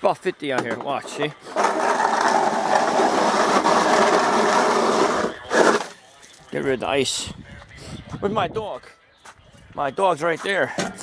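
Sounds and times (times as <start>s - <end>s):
snow shovel scraping ice on concrete: 1.0s - 6.0s.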